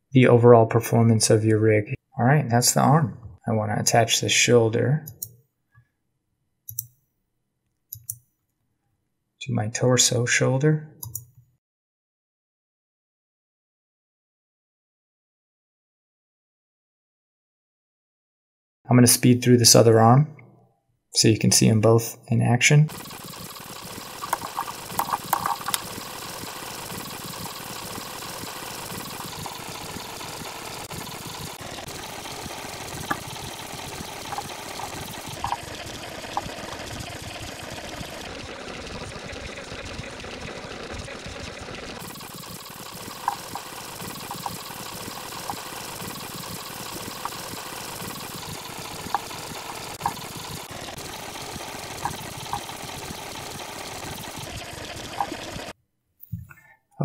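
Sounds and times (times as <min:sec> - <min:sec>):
computer mouse clicks: 0:05.1 - 0:05.4, 0:06.7 - 0:07.0, 0:07.9 - 0:08.2, 0:11.0 - 0:11.4, 0:24.2 - 0:26.0
noisy hum: 0:22.9 - 0:55.7.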